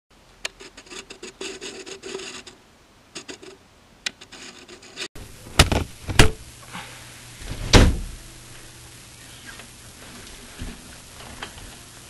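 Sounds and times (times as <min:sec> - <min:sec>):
pen scratching on paper: 0:00.6 - 0:02.6.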